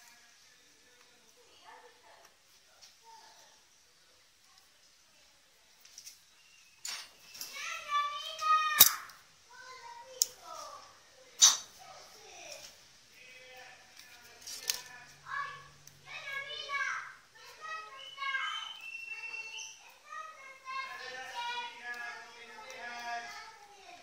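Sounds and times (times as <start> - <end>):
children chattering: 7.1 - 12.8, 14.6 - 24.0.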